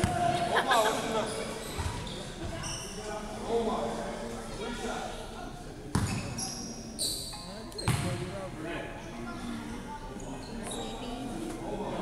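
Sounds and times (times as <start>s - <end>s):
basketball bouncing on hardwood floor: 7.9s - 8.1s.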